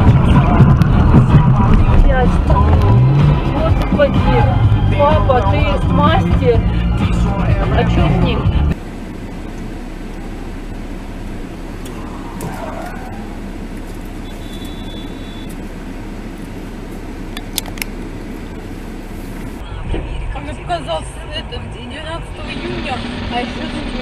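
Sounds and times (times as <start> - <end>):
car engine and road noise: 0.0 - 24.0.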